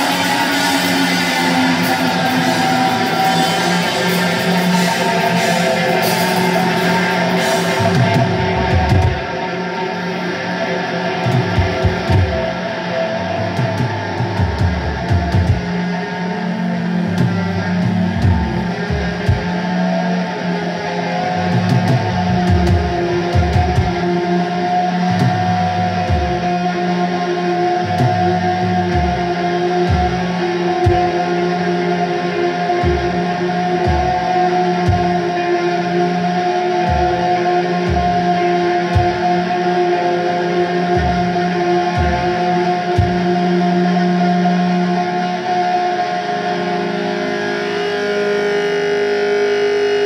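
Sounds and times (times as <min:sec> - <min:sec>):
rock band droning chord: 0:00.0 - 0:50.0.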